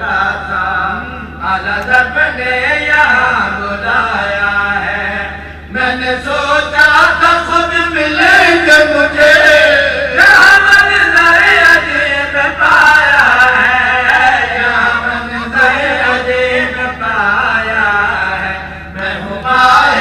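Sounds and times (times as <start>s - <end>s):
man chanting through loudspeakers: 0.0s - 20.0s
steady low hum: 0.0s - 20.0s.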